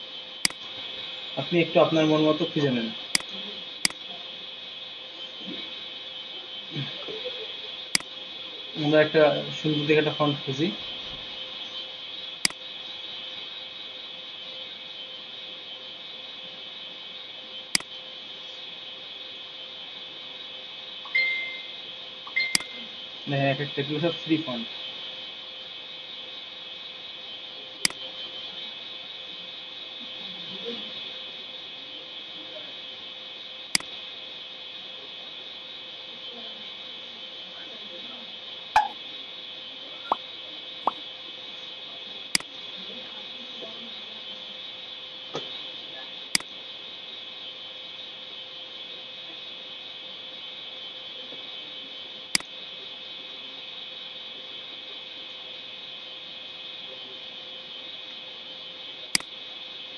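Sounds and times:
faint constant hum: 0.0 - 59.9
steady background hiss: 0.0 - 59.9
falling bloop pop effects: 38.8 - 39.0.

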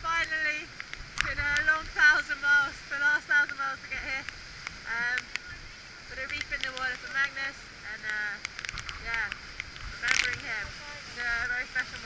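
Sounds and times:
wind and sea spray hiss: 0.0 - 12.0.

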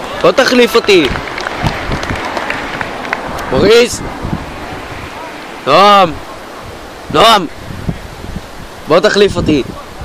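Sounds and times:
steady rushing outdoor noise: 0.0 - 10.0.

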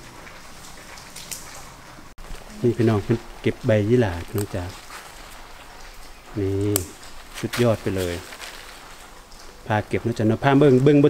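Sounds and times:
background hiss: 0.0 - 11.0
faint crackles: 0.0 - 11.0.

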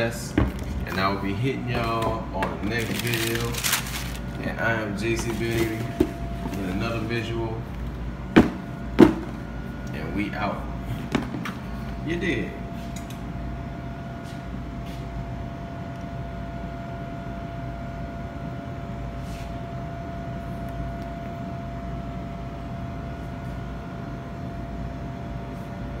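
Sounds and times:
machine hum: 0.0 - 26.0.

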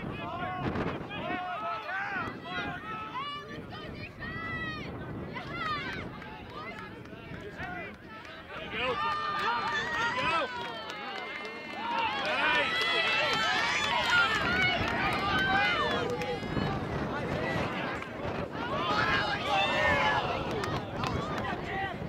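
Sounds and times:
many voices shouting: 8.4 - 22.0.

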